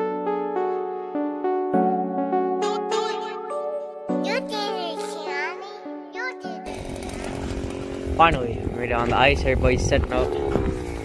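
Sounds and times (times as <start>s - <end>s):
small gas engine running: 6.6s - 11.0s.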